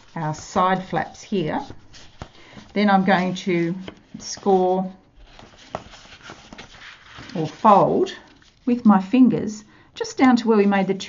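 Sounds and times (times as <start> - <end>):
cardstock rustling and sliding: 5.2 - 8.6.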